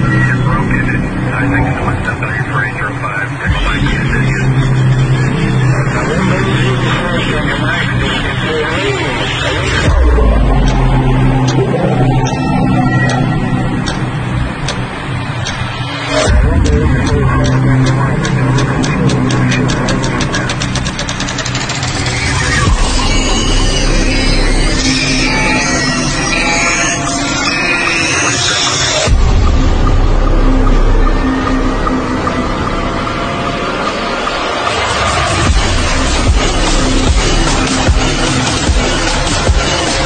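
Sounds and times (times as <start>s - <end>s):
low mechanical drone: 0.0s - 40.0s
people's voices: 0.0s - 40.0s
electronic music with ticking beat: 3.4s - 40.0s.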